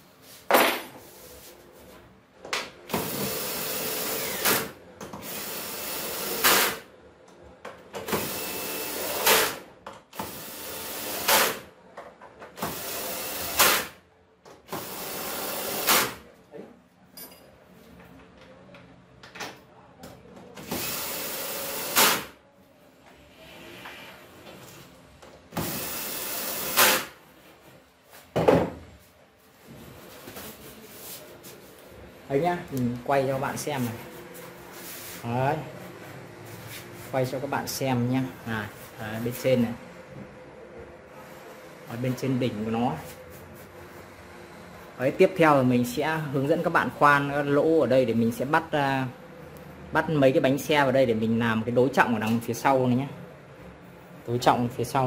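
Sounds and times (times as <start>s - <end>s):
cordless drill driving screws: 3.0s - 6.7s, 25.6s - 27.0s.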